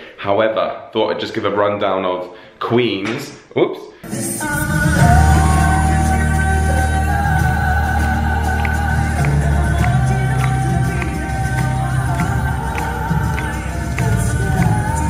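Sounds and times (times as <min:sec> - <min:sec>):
people singing live: 0:04.0 - 0:15.0
pop backing track with beat: 0:04.0 - 0:15.0.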